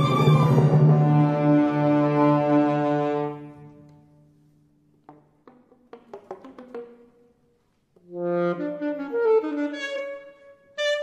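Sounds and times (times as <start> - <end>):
alto saxophone: 8.0 - 11.0.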